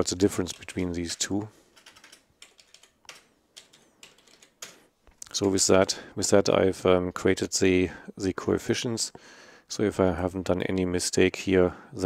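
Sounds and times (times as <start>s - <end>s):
faint keyboard keystrokes: 0.5s - 5.6s.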